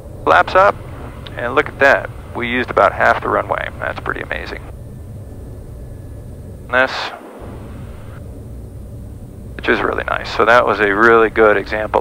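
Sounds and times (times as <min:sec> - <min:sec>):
turboprop engine rumble in cockpit: 0:00.0 - 0:12.0.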